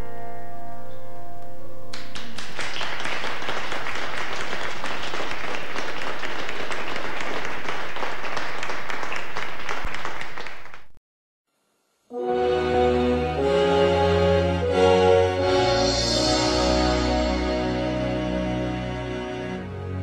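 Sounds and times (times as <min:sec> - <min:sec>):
audience applauding: 0:01.9 - 0:11.0.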